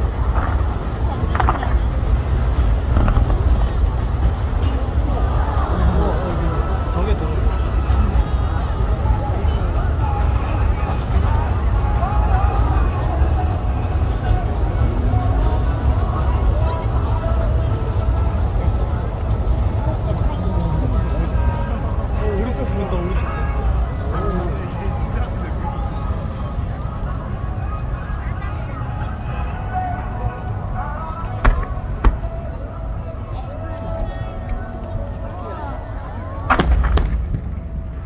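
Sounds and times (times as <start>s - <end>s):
faint voices talking: 0.0s - 38.0s
steady low rumble: 0.0s - 38.0s.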